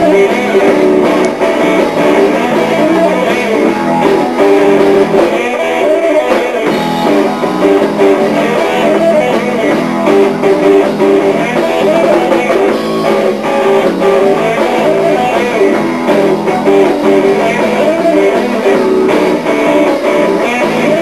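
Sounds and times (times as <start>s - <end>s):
electric guitar fast run: 0.0s - 21.0s
live blues-rock band: 0.0s - 21.0s.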